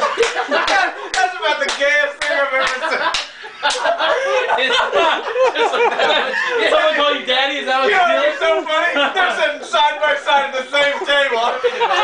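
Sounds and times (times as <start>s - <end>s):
men laughing: 0.0s - 12.0s.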